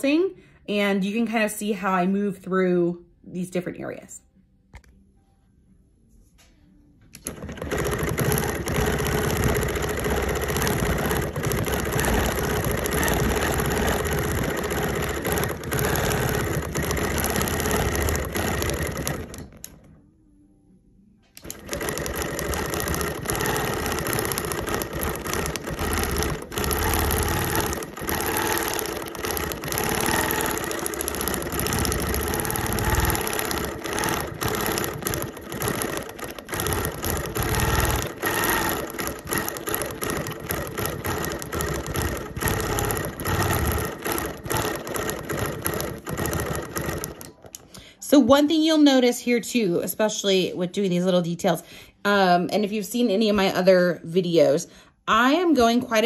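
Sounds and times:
quilting machine stitching: 0:07.2 - 0:20.0, 0:21.4 - 0:47.6.

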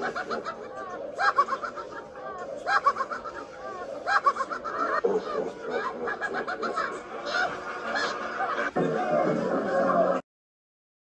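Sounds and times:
cackling creature laugh: 0:00.0 - 0:10.2.

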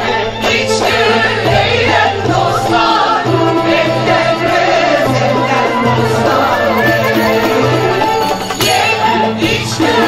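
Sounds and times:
mixed choir singing in unison: 0:00.0 - 0:10.0
saz ensemble playing: 0:00.5 - 0:09.0.

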